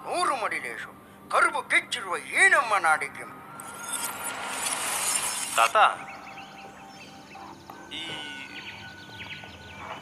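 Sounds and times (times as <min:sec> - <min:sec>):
trailer music bed: 0:03.3 - 0:10.0
birds chirping: 0:05.2 - 0:10.0.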